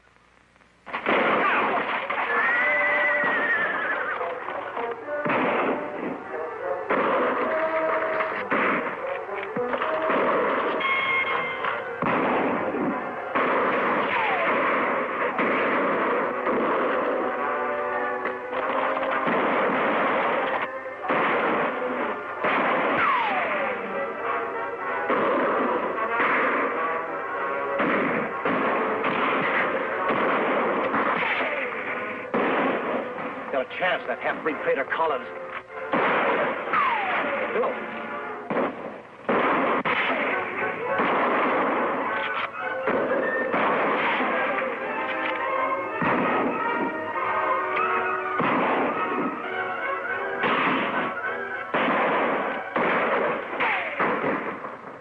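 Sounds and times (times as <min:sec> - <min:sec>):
film music: 0:00.8 - 0:55.0
rifle and pistol shots: 0:00.9 - 0:55.0
horses whinnying: 0:01.5 - 0:04.4.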